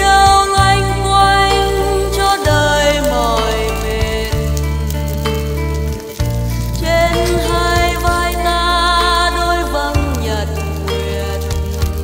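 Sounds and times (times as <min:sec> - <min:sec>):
crackling of burning grass: 0:00.0 - 0:12.0
instrumental background music: 0:00.0 - 0:12.0.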